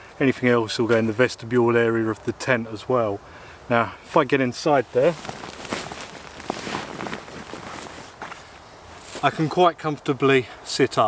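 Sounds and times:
tent fabric rustling: 0:04.7 - 0:09.6
small crackles: 0:04.9 - 0:09.3.

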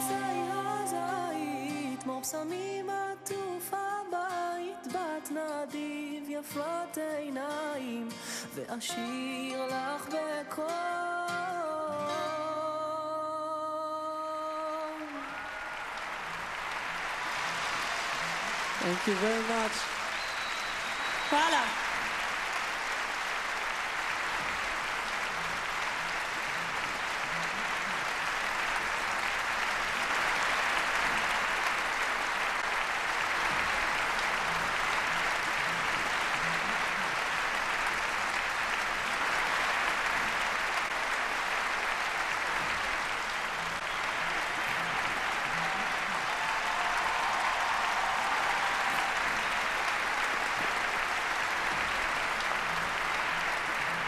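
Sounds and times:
audience applauding: 0:00.0 - 0:03.0, 0:14.3 - 0:54.0.

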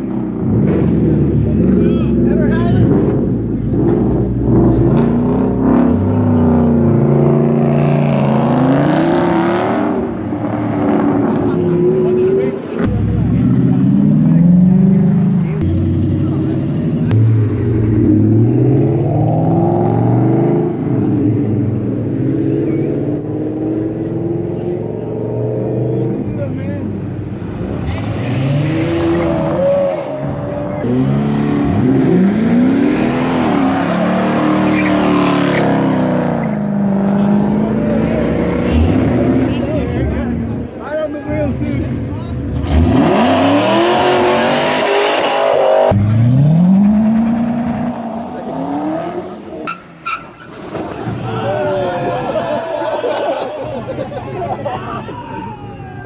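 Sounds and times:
sports car engines revving: 0:00.0 - 0:54.1.

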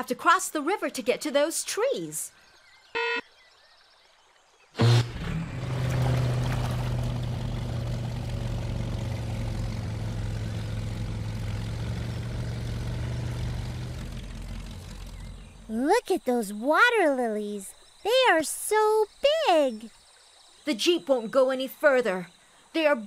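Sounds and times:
cartoon jeep engine drone: 0:04.8 - 0:16.1.

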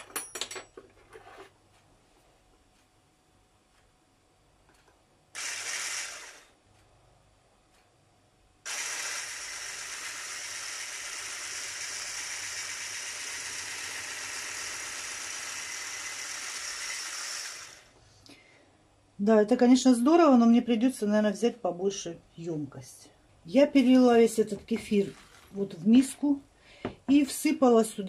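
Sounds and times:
hand blender whisking: 0:05.4 - 0:06.5, 0:08.7 - 0:17.9, 0:24.7 - 0:25.9.

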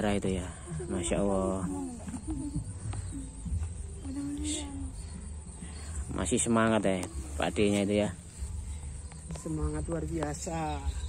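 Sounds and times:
high insect chirp: 0:00.0 - 0:11.0.

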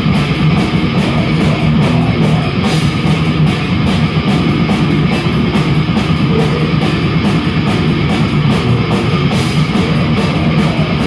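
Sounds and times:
bass guitar: 0:00.0 - 0:11.0
drum kit with cymbal hits: 0:00.0 - 0:11.0
electric guitars: 0:00.0 - 0:11.0.

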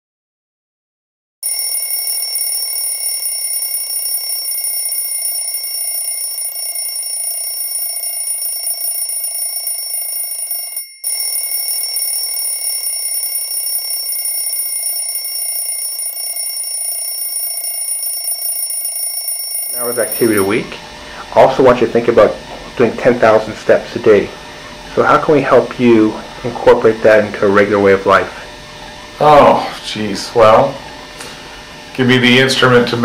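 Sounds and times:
high-pitched electronic ringing tone: 0:01.4 - 0:20.7.

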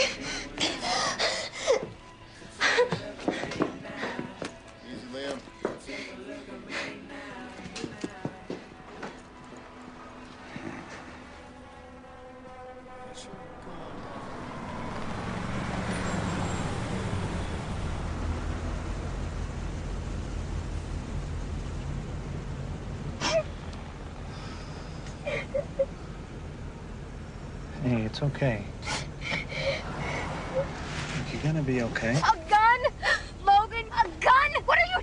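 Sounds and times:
vehicle engine and road noise: 0:00.0 - 0:05.9, 0:07.6 - 0:35.0
soft song: 0:00.0 - 0:15.2.

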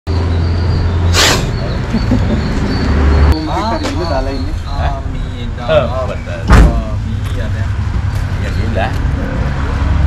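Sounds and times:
loud thump: 0:06.5 - 0:06.8.

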